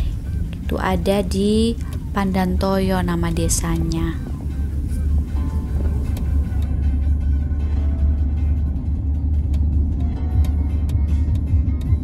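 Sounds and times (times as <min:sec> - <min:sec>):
car road rumble: 0:00.0 - 0:12.0
faint background music: 0:00.0 - 0:12.0.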